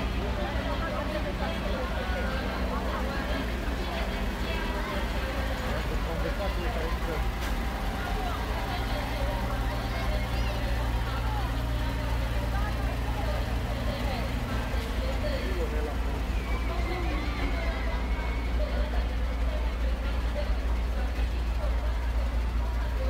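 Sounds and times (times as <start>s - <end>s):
crowd chatter: 0.0s - 23.0s
low engine rumble: 0.0s - 23.0s.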